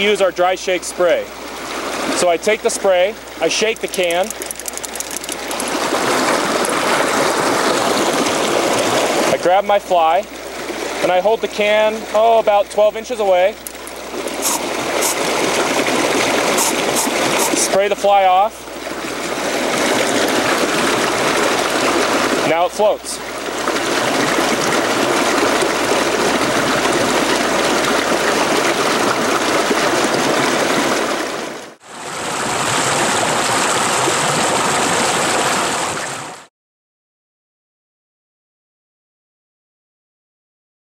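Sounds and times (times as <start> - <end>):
mountain stream flowing over stones: 0.0 - 36.4
aerosol can spraying hiss: 14.4 - 15.2.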